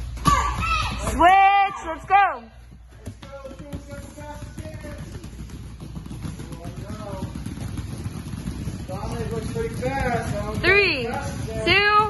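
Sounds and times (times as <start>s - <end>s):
bare feet pattering on foam mat: 0.3s - 12.0s.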